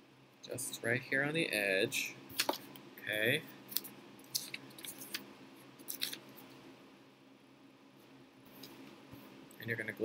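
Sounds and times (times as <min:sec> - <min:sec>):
low steady hum: 0:00.0 - 0:10.0
paper crinkling: 0:03.7 - 0:05.2, 0:05.8 - 0:06.2
faint paper rustling: 0:03.7 - 0:06.6.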